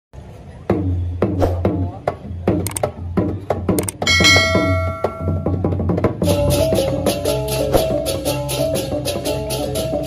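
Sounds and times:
drum strikes dropping in pitch: 4.0 - 5.8
metallic gong-like clang: 4.1 - 5.6.

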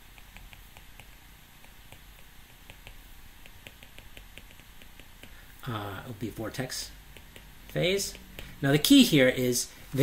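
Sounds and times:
stylus tapping on glass screen: 0.1 - 5.4, 7.1 - 8.6.

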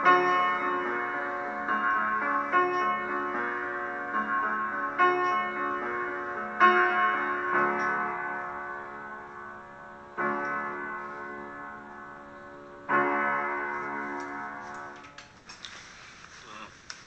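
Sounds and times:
slow piano chords: 0.0 - 15.2.

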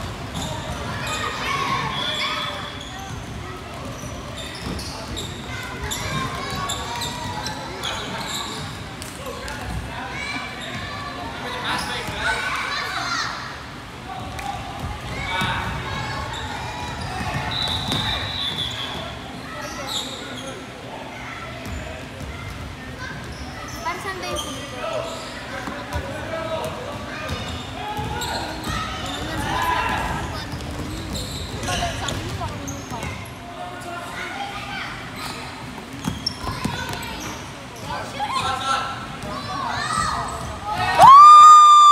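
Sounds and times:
sneaker squeaks: 0.2 - 12.4, 14.8 - 20.8, 21.6 - 33.4, 35.1 - 41.0.

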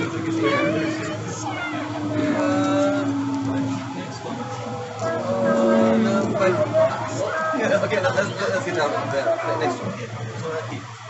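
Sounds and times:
steady low hum: 0.0 - 11.0
voices talking: 0.0 - 11.0.

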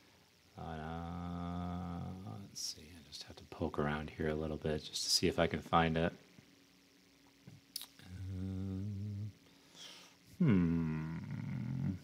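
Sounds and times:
man humming: 0.6 - 2.5, 7.8 - 12.0.

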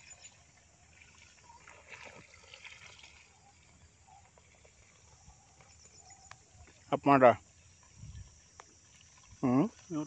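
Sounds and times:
faint high chirps: 3.2 - 6.9.

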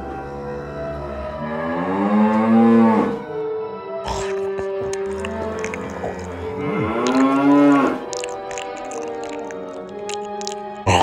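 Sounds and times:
dinosaur creature cry: 4.1 - 11.0.

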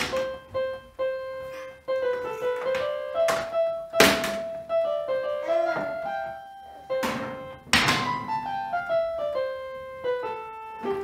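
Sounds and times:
electronic keyboard melody: 0.0 - 11.0.

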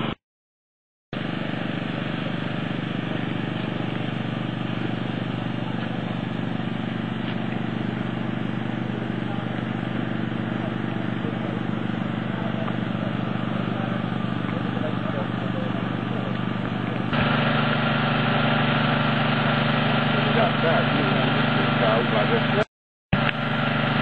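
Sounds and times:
engine idling: 1.2 - 24.0.

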